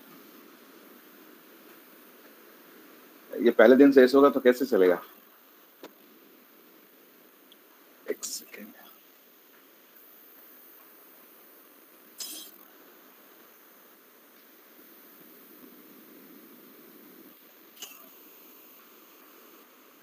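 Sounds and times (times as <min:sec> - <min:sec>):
faint background hiss: 0:00.0 - 0:20.0.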